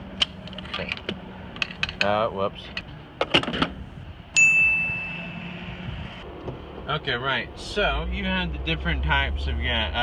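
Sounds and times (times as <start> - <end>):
electronic ding: 4.4 - 5.6.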